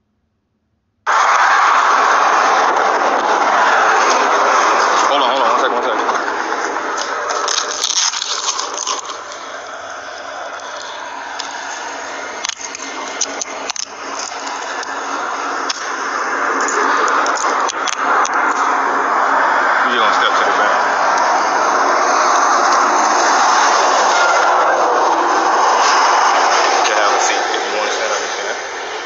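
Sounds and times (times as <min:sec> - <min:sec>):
freight train rushing past: 0:01.1 - 0:07.8, 0:08.7 - 0:29.0.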